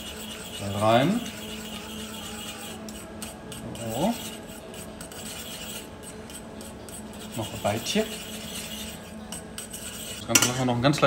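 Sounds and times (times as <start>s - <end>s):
whisk scraping a saucepan: 0.0s - 11.0s.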